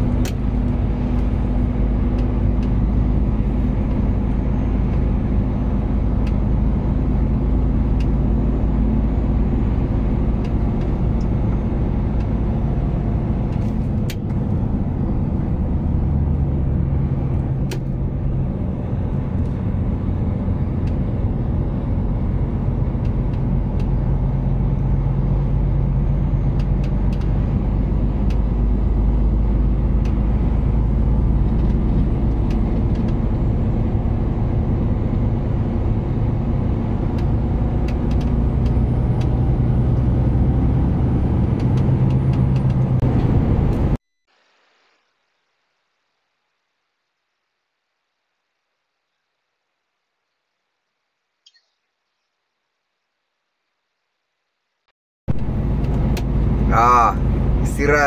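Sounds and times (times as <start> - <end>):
diesel engine running: 0.0 - 44.0, 55.3 - 58.0
road and tyre noise: 0.0 - 58.0.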